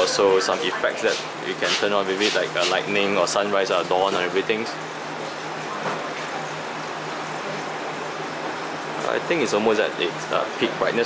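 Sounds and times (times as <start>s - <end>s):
faint low equipment hum: 0.0s - 11.0s.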